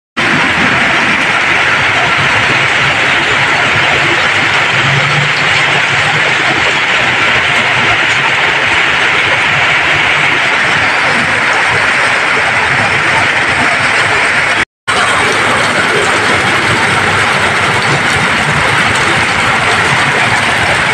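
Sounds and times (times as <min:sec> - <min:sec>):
heavy rain falling: 0:00.2 - 0:20.9
vehicles driving through water: 0:00.2 - 0:20.9.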